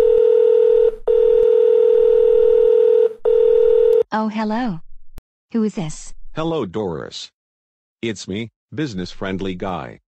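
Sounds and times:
telephone line tone: 0.0 - 4.0.

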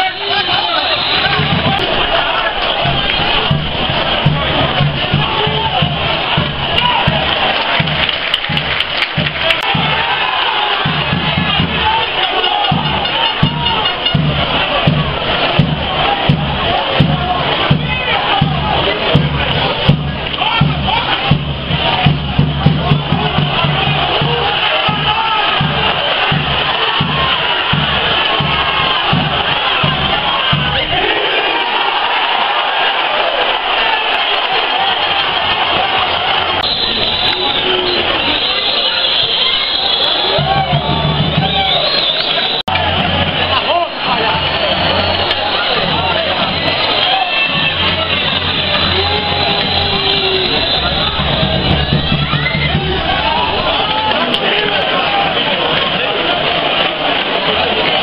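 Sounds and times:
crowd singing and chanting: 0.0 - 58.0
bass drum beating: 1.3 - 10.2, 10.8 - 12.1, 12.7 - 31.0, 44.3 - 54.2.

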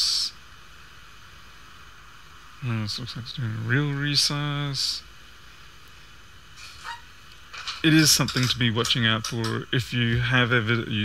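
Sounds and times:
room tone hiss: 0.0 - 11.0
man talking: 2.6 - 5.0, 7.8 - 11.0.

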